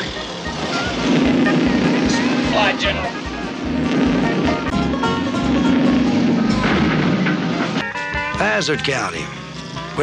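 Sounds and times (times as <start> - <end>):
car engine running at speed: 0.0 - 8.6
background music: 0.0 - 10.0.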